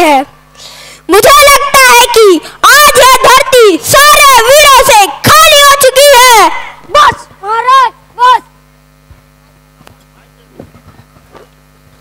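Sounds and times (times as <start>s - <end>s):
mains hum: 0.0s - 12.0s.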